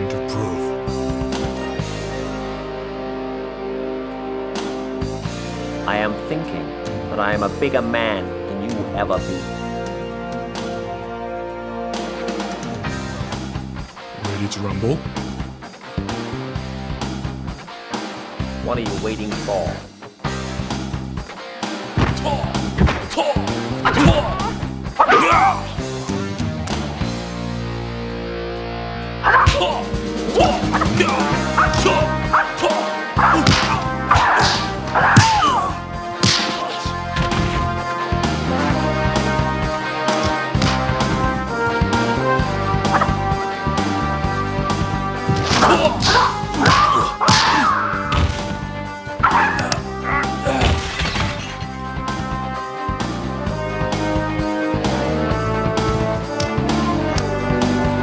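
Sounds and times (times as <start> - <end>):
background music: 0.0 - 58.0
man's shrill battle cries: 23.9 - 25.8, 29.3 - 35.8, 45.6 - 48.1.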